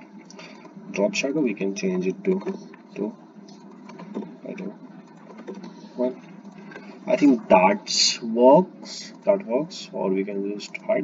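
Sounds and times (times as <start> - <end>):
low background hiss: 5.9 - 11.0.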